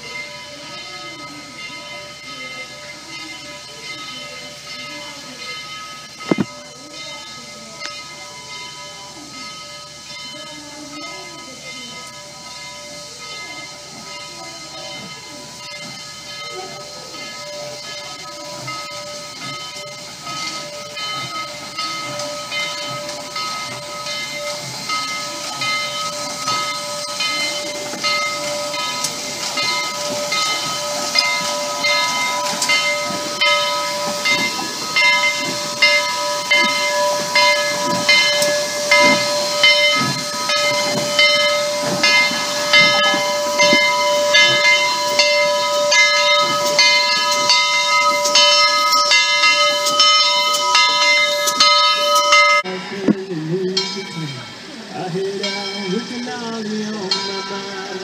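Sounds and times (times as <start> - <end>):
locomotive chuffs and clanks: 0.0 - 58.0
steady high tones: 0.0 - 58.0
steam hissing: 0.0 - 58.0.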